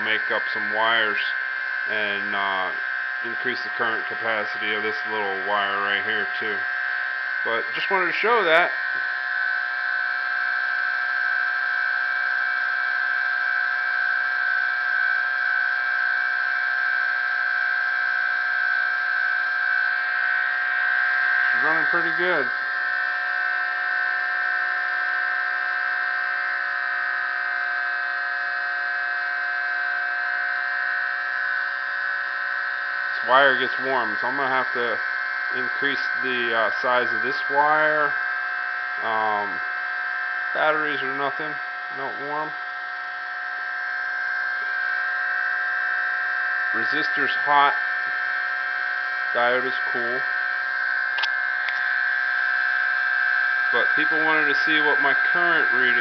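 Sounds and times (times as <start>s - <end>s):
pulse motor high-pitched whine: 0.0s - 56.0s.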